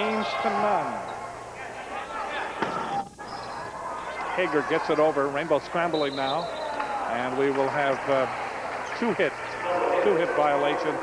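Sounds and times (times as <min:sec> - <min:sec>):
gym crowd noise: 0:00.0 - 0:11.0.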